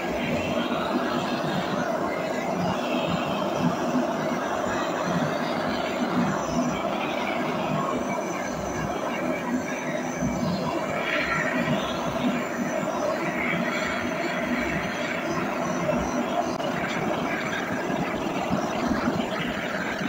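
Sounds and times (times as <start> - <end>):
blowtorch hissing: 0.0 - 20.0.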